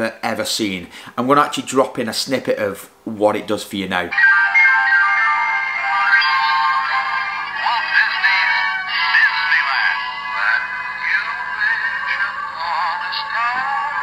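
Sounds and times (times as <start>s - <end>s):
thin music with singing: 4.1s - 14.0s.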